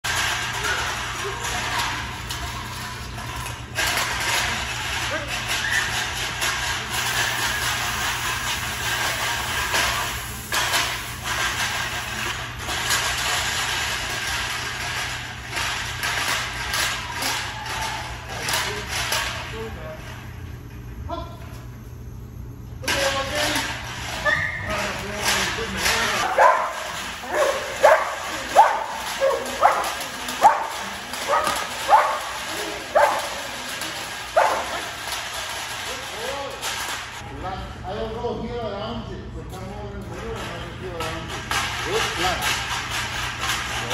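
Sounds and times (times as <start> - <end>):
steady background noise: 0.0 - 43.9
dog barking: 26.2 - 32.3, 33.0 - 33.3, 34.4 - 34.7.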